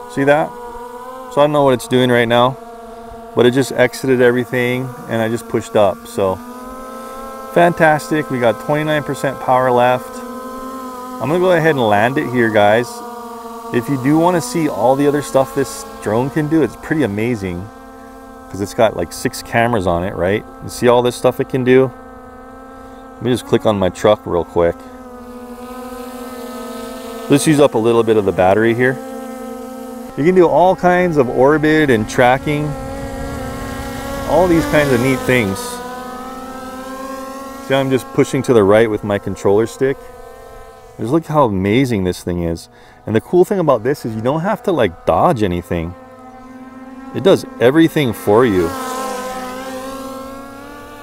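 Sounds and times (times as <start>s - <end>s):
drone propellers humming: 0.0s - 51.0s.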